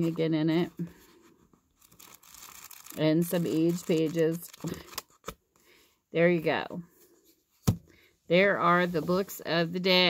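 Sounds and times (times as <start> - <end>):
book pages rustling: 1.0 - 5.4.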